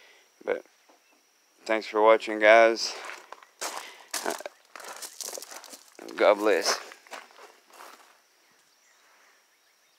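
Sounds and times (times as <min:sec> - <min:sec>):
footsteps on gravel: 0:02.8 - 0:08.2.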